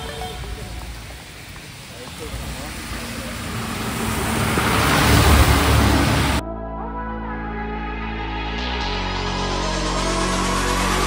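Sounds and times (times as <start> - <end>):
bus engine rumble: 0.0 - 6.4
tyres hissing through water: 0.0 - 6.4.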